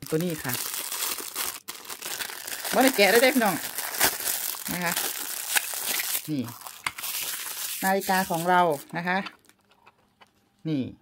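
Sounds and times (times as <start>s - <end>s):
plastic bag crinkling: 0.0s - 9.7s.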